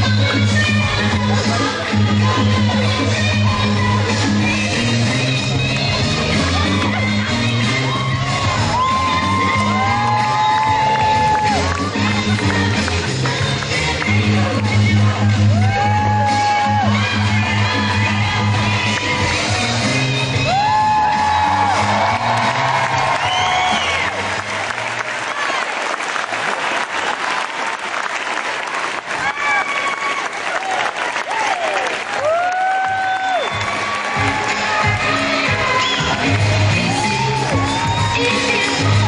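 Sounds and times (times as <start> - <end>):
pop dance music: 0.0 - 25.0, 32.2 - 39.0
audience cheering and whooping: 6.3 - 12.8, 15.3 - 27.7, 29.0 - 39.0
audience clapping: 8.4 - 14.8, 20.5 - 38.0.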